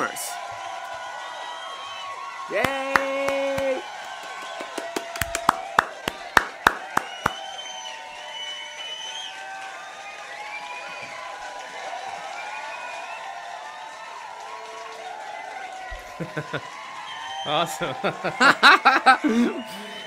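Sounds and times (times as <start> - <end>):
hand claps: 1.8 - 20.0
man cheering: 2.5 - 4.0, 16.0 - 16.7, 17.4 - 20.0.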